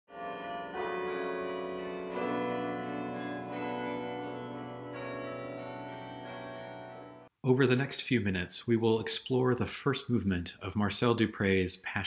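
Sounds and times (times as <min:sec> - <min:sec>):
pipe organ chords: 0:00.2 - 0:07.3.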